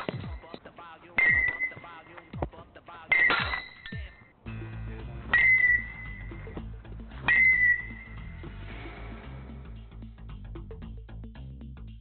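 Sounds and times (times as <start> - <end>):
baseball bat pinging balls: 0.0 - 4.3, 5.1 - 8.4
background music: 0.0 - 12.0.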